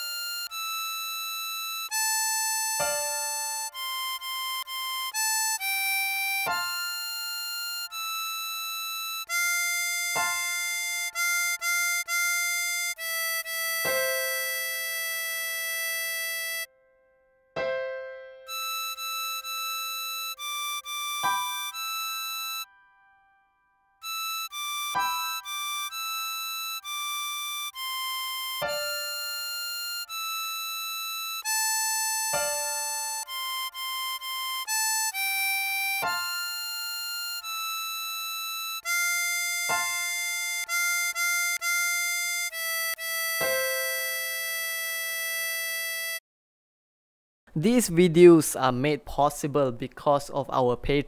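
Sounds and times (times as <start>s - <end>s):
harmonica blow note: 0.0s - 16.7s, 18.4s - 22.9s, 24.0s - 46.2s.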